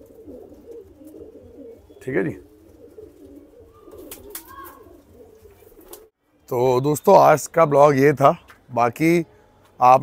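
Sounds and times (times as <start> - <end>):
pigeons cooing: 0.0 - 6.2.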